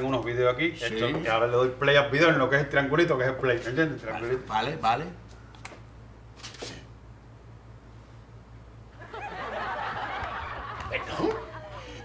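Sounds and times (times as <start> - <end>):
audience laughing: 9.0 - 12.0.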